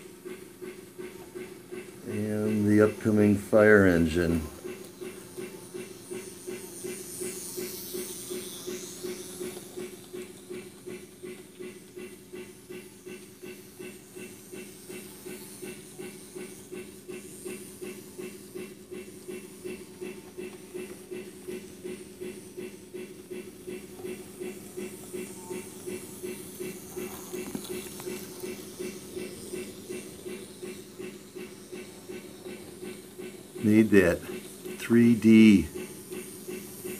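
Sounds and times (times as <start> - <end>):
repeating hissing beat: 0.0 - 36.9
steady hum: 0.0 - 36.9.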